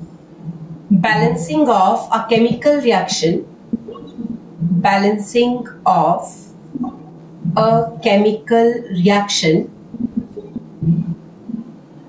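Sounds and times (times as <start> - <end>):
woman murmuring softly: 3.8 - 5.1, 6.8 - 8.0, 9.5 - 11.8.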